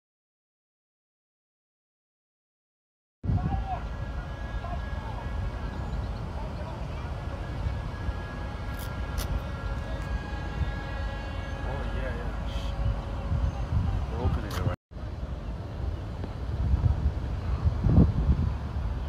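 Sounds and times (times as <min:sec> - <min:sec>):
wind rumbling on microphone: 0:03.2 - 0:19.0
distant traffic: 0:03.3 - 0:19.0
thin steady hum: 0:03.3 - 0:19.0.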